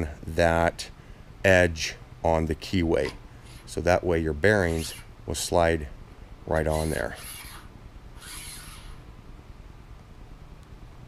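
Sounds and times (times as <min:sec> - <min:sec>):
low steady hum: 0:00.0 - 0:11.0
metal bearing scraping along axle: 0:03.0 - 0:03.9, 0:04.5 - 0:05.1, 0:06.6 - 0:09.1.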